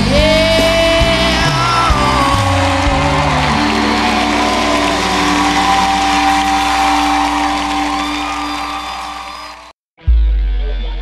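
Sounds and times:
crowd cheering: 0.4s - 9.8s.

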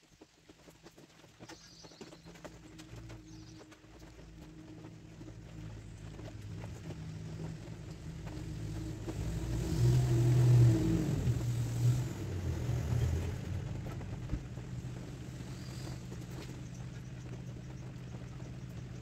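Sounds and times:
vehicle engine passing by: 2.4s - 19.0s.

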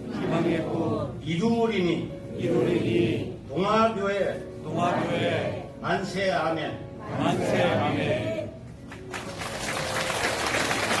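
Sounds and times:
congregation applauding: 8.8s - 11.0s.

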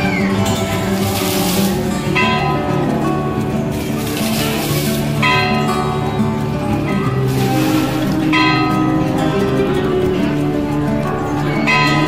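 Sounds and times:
devotional music: 0.0s - 12.0s
temple bells ringing: 0.0s - 12.0s.

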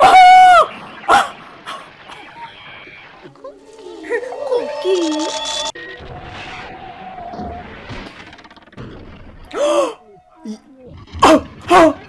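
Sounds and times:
high-pitched scream: 3.5s - 5.8s.

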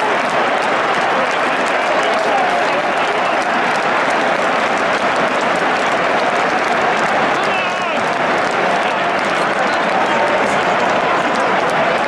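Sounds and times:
crowd clapping: 0.0s - 12.0s
stadium crowd cheering: 0.0s - 12.0s.

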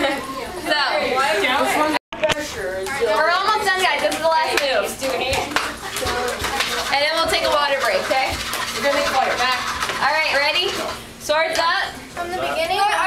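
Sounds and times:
people chattering: 0.0s - 8.2s.

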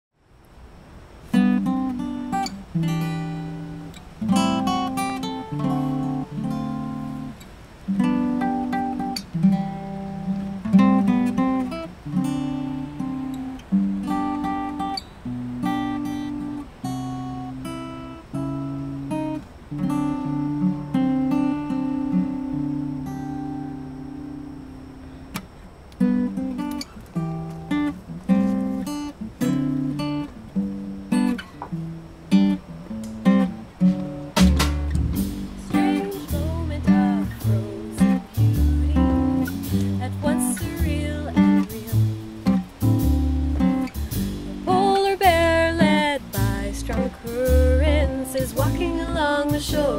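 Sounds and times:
acoustic guitar playing: 1.0s - 49.9s.

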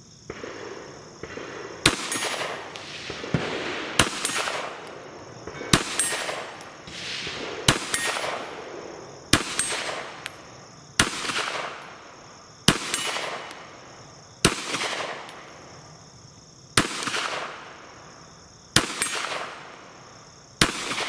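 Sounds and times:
pistol shots: 0.3s - 12.0s, 12.6s - 13.8s, 14.4s - 15.5s, 16.8s - 17.7s, 18.7s - 19.8s, 20.6s - 21.0s.

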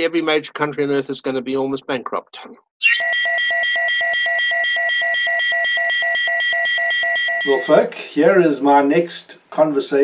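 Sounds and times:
rapid pulsing beeps: 2.8s - 7.8s.

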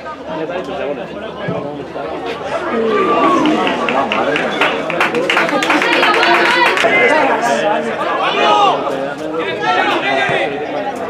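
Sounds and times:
voices calling and talking: 0.0s - 11.0s
long shout: 2.7s - 4.3s.

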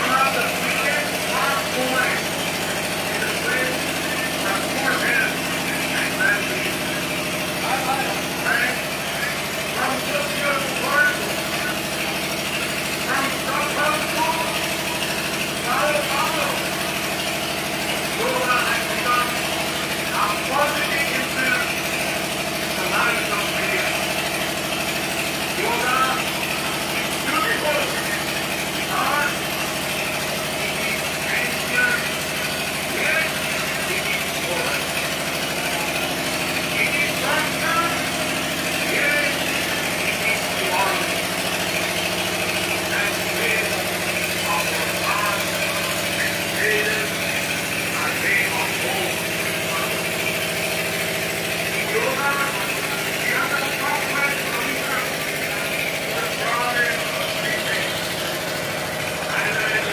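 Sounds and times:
distant voices: 0.0s - 59.9s
steady mechanical hum: 0.0s - 59.9s.

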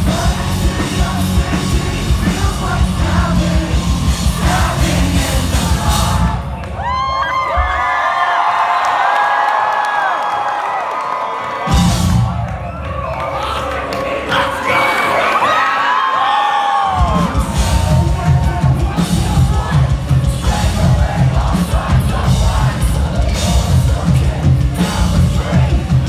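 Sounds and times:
heavy metal band playing: 0.0s - 7.0s, 11.7s - 15.8s, 16.8s - 26.0s
vocals: 0.0s - 7.1s, 13.2s - 26.0s
crowd yelling and singing: 0.0s - 26.0s.

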